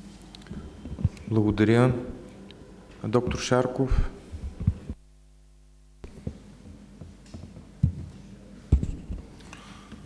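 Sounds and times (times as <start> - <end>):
electrical hum: 0.0 - 10.0
soft low thumps: 4.3 - 5.0.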